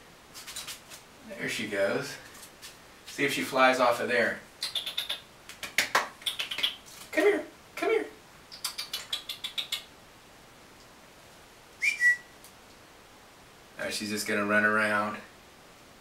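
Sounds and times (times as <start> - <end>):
rising whistle: 11.8 - 12.4.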